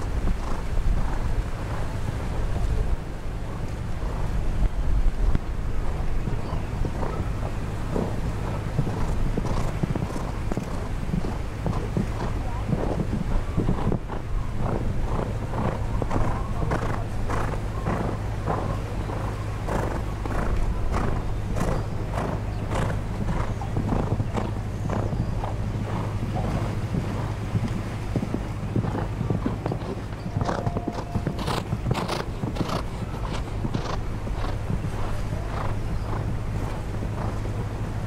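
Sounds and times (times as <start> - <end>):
horse hooves cantering on sand: 0.0 - 38.0
low rumble: 0.0 - 38.0.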